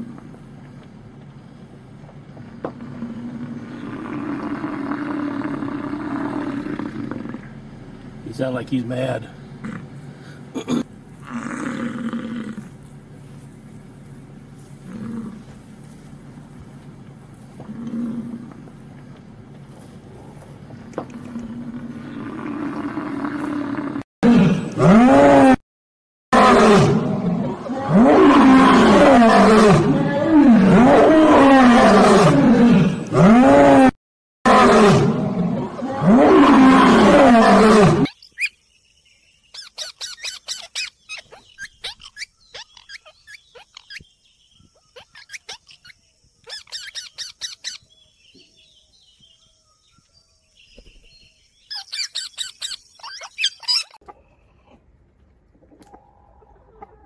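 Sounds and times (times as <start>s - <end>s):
lions roaring: 2.8s - 7.7s, 10.6s - 12.9s, 14.7s - 15.7s, 17.5s - 18.8s, 21.1s - 25.6s, 26.4s - 33.9s, 34.5s - 38.1s.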